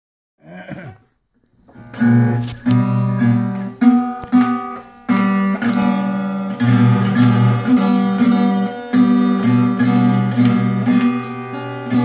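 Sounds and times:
acoustic guitar strumming: 1.6 - 12.0.

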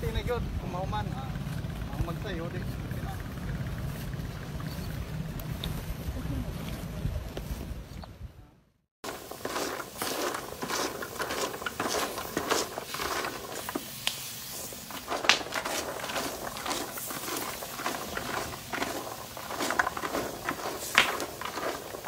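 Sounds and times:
nuts crackling and popping in a pan: 9.0 - 22.0.

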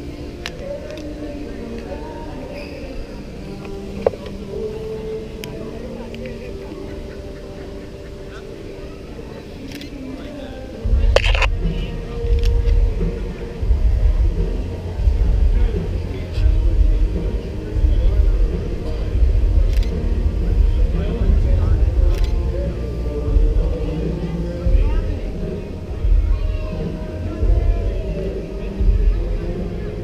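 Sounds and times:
indistinct voices: 0.0 - 30.0.

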